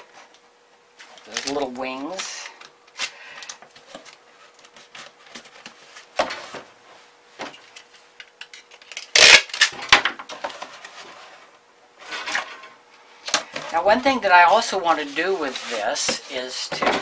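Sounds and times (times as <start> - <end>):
cardboard rustling: 13.6 - 17.0
cardboard scraping crinkle: 14.4 - 17.0.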